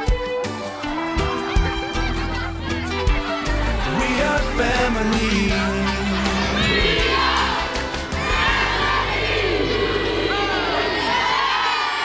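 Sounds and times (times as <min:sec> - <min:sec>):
backing track music: 0:00.0 - 0:11.2
boys shouting cheering and laughing: 0:00.5 - 0:12.0.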